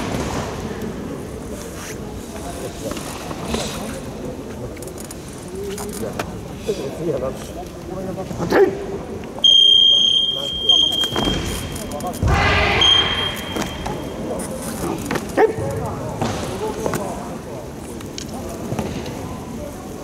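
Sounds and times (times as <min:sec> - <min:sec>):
crowd noise: 0:00.0 - 0:20.0
voices in a hall: 0:00.0 - 0:20.0
referee's whistle blast: 0:09.4 - 0:14.1.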